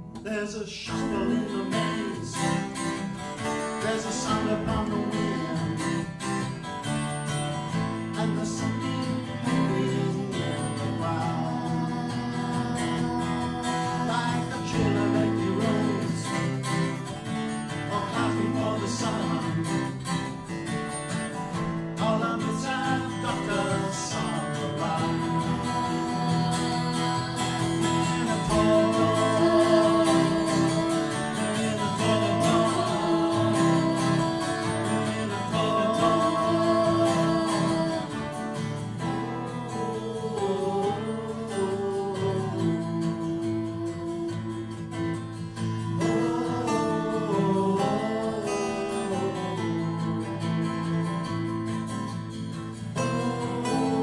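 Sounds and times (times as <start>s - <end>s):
acoustic guitars strumming: 0.0s - 54.0s
people singing: 0.2s - 54.0s.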